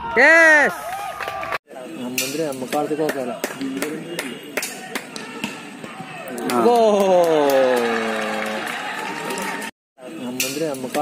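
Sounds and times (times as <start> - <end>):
spectators clapping in rhythm: 2.6 - 5.3, 6.3 - 9.7.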